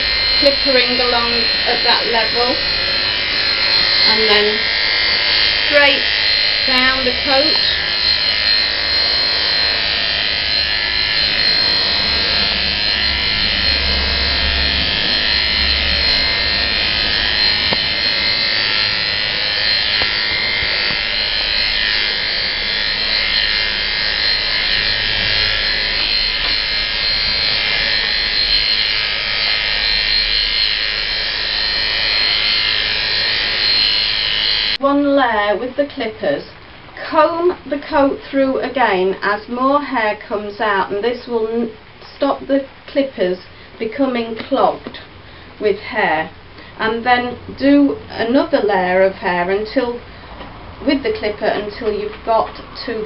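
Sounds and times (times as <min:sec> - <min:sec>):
electric clippers buzzing: 0:00.0 - 0:53.0.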